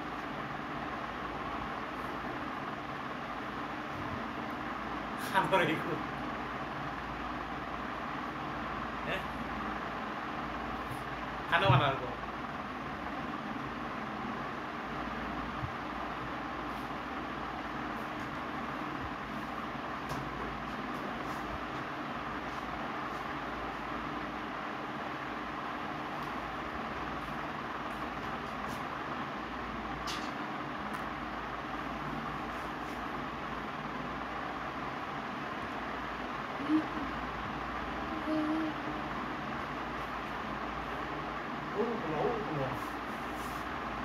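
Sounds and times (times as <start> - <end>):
background hum and hiss: 0.0 - 44.0.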